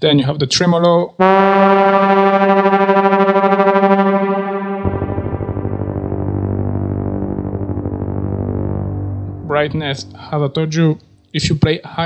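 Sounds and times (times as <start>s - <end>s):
buzzy synth horn with tremolo: 1.2s - 11.2s.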